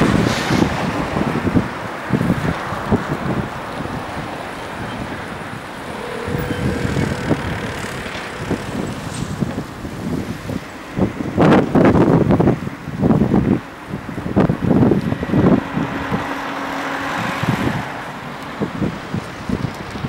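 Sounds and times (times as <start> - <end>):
street traffic: 0.0 - 20.0
wind buffeting microphone: 0.0 - 20.0
low hum: 5.6 - 10.2.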